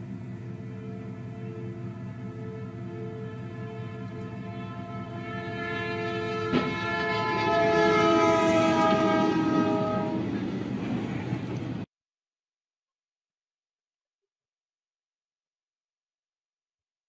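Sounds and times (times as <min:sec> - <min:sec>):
locomotive air horn: 0:00.0 - 0:10.5.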